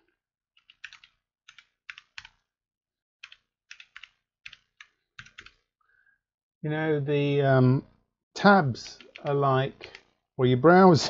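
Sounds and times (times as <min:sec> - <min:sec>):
keyboard typing: 0:00.6 - 0:02.5, 0:03.2 - 0:05.7, 0:08.8 - 0:10.2.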